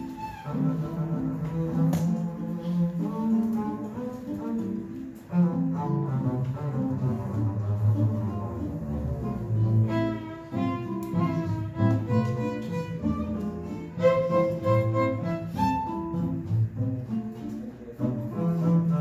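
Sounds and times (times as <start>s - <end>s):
acoustic guitar: 0.0s - 19.0s
plucked double bass: 0.0s - 19.0s
violin: 0.0s - 19.0s.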